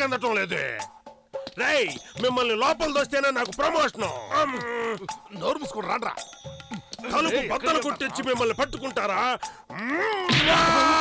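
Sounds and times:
person groaning and grunting: 4.1 - 5.1, 7.0 - 8.6, 9.7 - 11.0.

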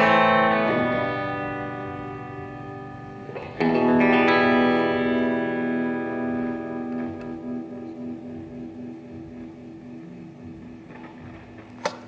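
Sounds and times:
electric guitar chord with tremolo: 0.0 - 12.0.

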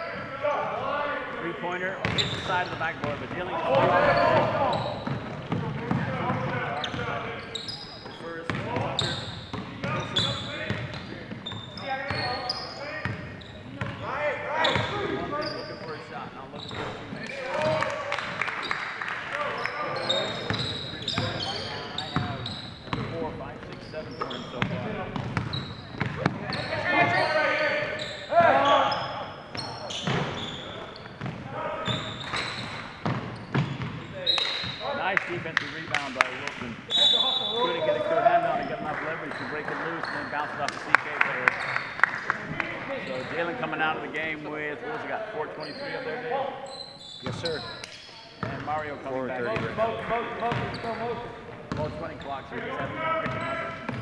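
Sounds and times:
players calling out: 0.0 - 54.0
sneakers squeaking: 1.7 - 40.7, 41.5 - 44.8, 45.4 - 54.0.

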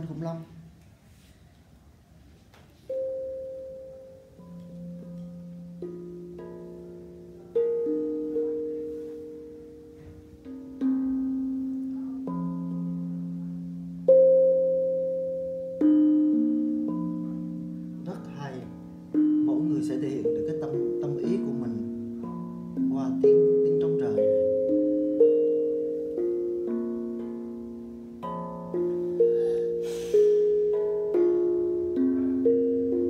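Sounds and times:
steel tongue drum melody: 2.8 - 33.0.

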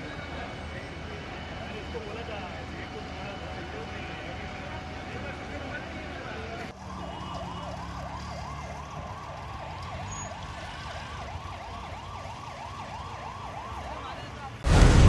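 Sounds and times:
fire engine siren yelping: 0.0 - 15.0
low rumble of traffic: 0.0 - 15.0
loud burst of sound: 14.6 - 15.0.

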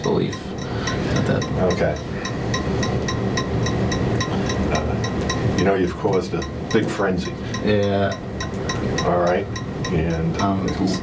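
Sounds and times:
fast even ticking: 0.0 - 11.0
tape hum and hiss: 0.0 - 11.0.

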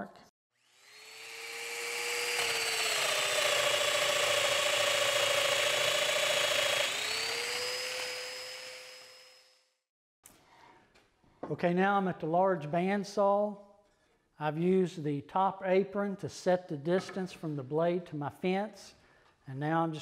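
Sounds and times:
power joiner motor running: 0.6 - 9.7
cutter plunging into wood: 1.7 - 8.6.

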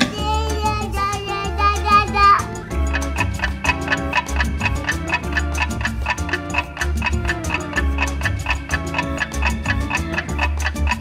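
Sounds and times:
background music with bass line: 0.0 - 11.0
clock ticking: 0.0 - 11.0.

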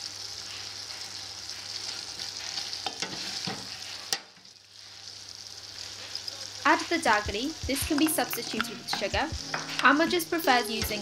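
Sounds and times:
chutney sizzling in oil: 0.0 - 11.0
wooden spoon stirring: 7.9 - 10.0
spoon knocking against pot: 8.0 - 9.9.

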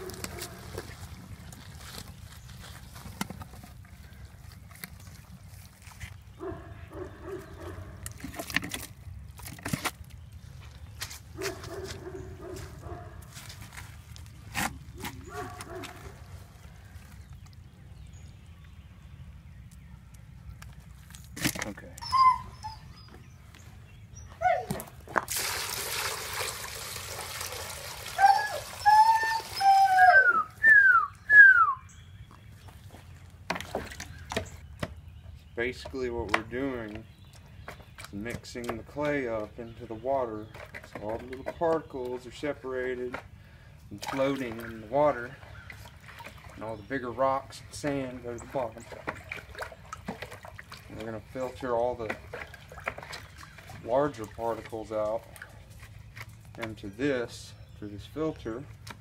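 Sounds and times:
shovel digging in wet clay: 7.5 - 10.3, 12.6 - 16.3, 21.0 - 22.1
rising and falling calls: 28.2 - 32.0.

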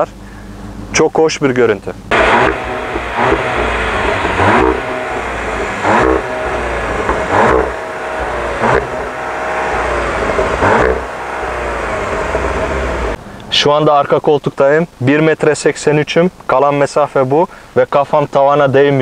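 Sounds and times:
car engine running: 1.9 - 13.2.

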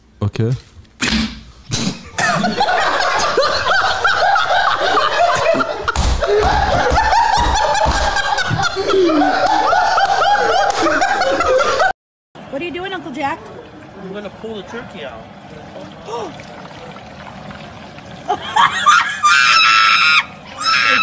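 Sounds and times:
man laughing hard: 2.2 - 11.9.

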